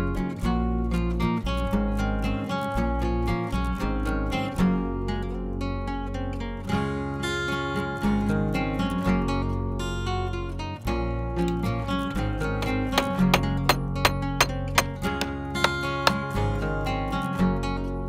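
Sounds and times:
acoustic guitar music: 0:00.0 - 0:18.0.

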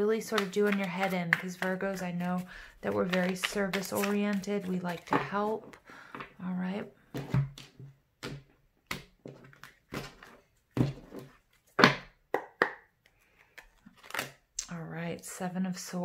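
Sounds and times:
cards shuffling on wooden table: 0:00.2 - 0:05.8.

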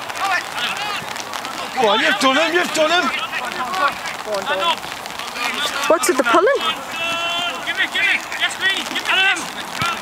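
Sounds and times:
men shouting and calling out: 0:00.0 - 0:10.0.

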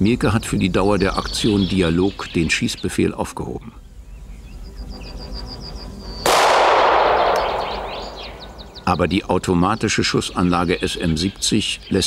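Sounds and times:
loud blast: 0:06.3 - 0:08.8.

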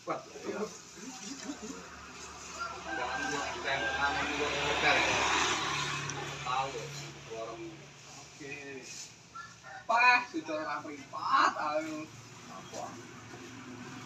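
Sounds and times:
indistinct voices talking: 0:00.0 - 0:13.3
vehicle passing by: 0:00.5 - 0:09.1, 0:11.5 - 0:14.0.

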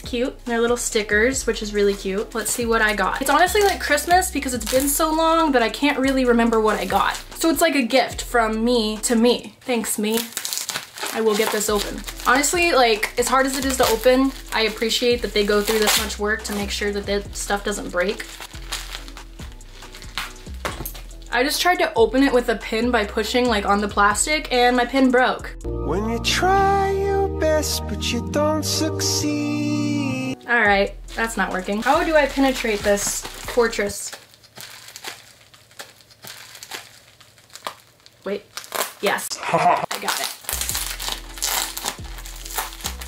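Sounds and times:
soft background music: 0:00.0 - 0:35.1, 0:40.4 - 0:43.0
plastic packaging clicks and crinkles: 0:09.6 - 0:17.0, 0:17.7 - 0:21.4, 0:31.1 - 0:39.3, 0:39.9 - 0:43.0.

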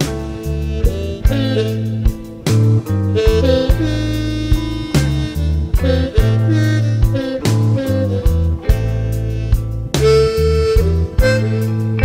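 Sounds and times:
slow blues band playing: 0:00.0 - 0:12.0.

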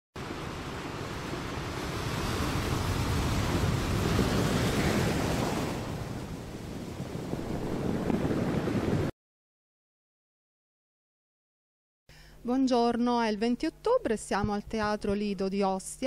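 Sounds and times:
sea waves washing on shore: 0:00.2 - 0:09.1.

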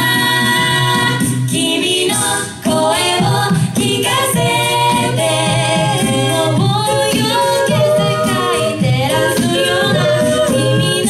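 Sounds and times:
group singing in close harmony: 0:00.0 - 0:11.0.

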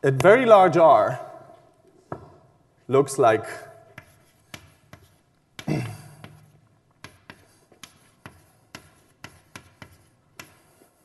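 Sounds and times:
chalk tapping and writing on blackboard: 0:03.8 - 0:11.0.

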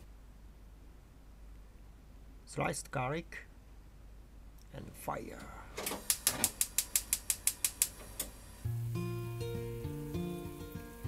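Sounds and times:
stove igniter clicking rapidly: 0:05.9 - 0:08.4
background music with bass: 0:08.7 - 0:11.0.

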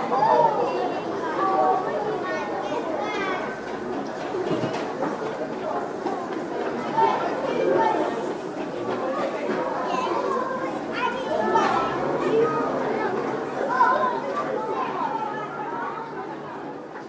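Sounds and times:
children talking and calling out: 0:00.0 - 0:17.0.

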